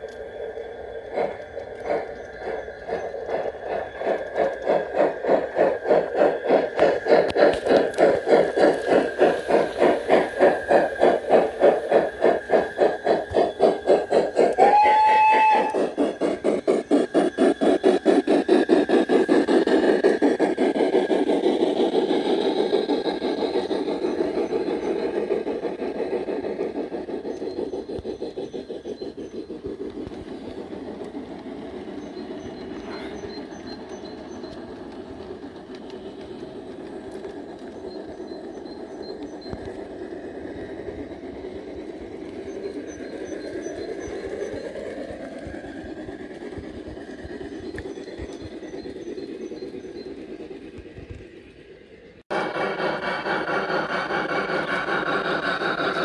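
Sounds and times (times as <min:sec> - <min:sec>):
electronic steam chuffing: 0:00.0 - 0:56.0
whistle toot: 0:14.5 - 0:16.0.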